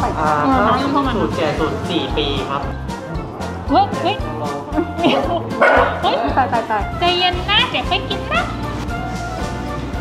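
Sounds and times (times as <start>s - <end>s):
background music: 0.0s - 10.0s
dog barking sharply: 5.6s - 6.0s.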